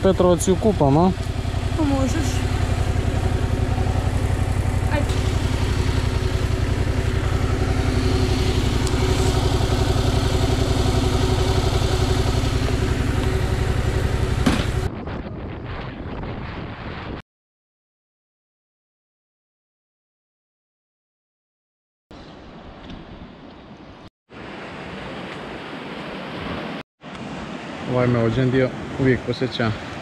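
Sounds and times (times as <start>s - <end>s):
motorcycle engine idling: 0.0s - 14.9s
wind noise on microphone: 14.4s - 17.2s.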